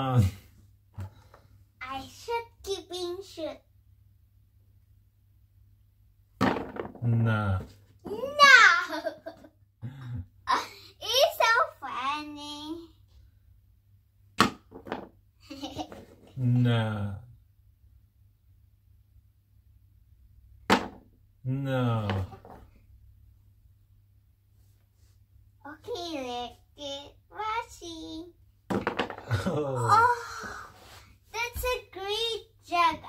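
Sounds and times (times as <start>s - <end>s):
small object thunking on box: 6.4s - 7.0s, 20.7s - 21.1s, 28.7s - 29.2s.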